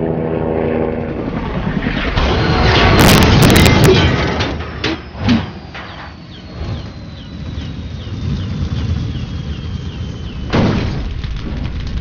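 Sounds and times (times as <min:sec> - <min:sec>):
high whine falling in pitch: 0:01.8 - 0:10.6.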